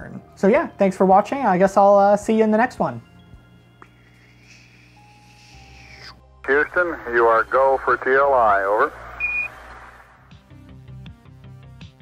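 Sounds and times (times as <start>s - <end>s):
radio hiss: 6.5s - 10.1s
high radio beep: 9.2s - 9.6s.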